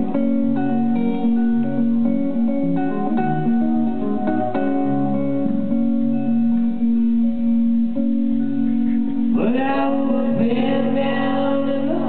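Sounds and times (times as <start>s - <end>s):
solo guitar picked notes: 0.0s - 12.0s.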